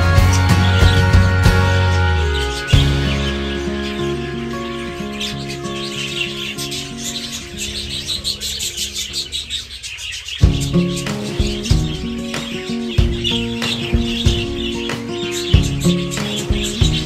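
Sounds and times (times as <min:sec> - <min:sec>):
background music: 0:00.0 - 0:09.2, 0:10.4 - 0:17.0
budgerigars chirping: 0:00.0 - 0:17.0.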